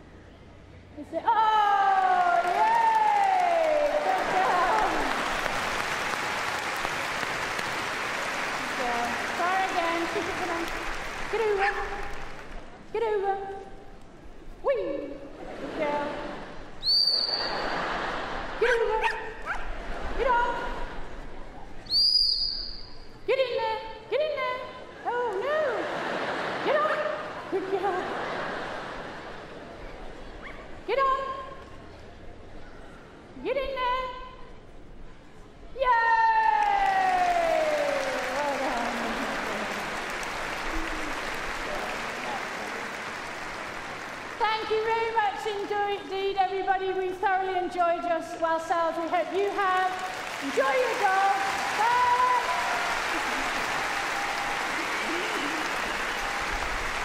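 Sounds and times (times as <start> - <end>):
audience applauding: 2.0 - 12.8, 36.4 - 46.0, 49.0 - 57.0.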